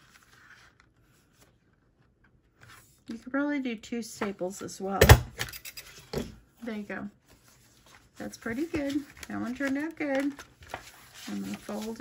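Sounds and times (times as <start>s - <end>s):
paper rustling: 0.0s - 3.0s, 7.2s - 12.0s.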